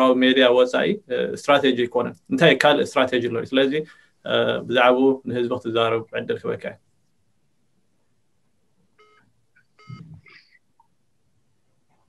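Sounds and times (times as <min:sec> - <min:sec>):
short electronic beeps: 0:09.0 - 0:10.6.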